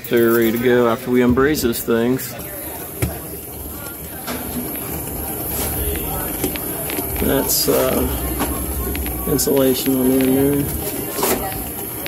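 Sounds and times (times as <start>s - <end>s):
steady hissing: 2.6s - 12.0s.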